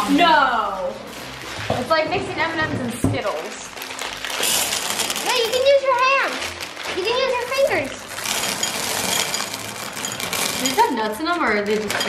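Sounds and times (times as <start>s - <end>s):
candies rattling into a bowl: 3.2s - 12.0s.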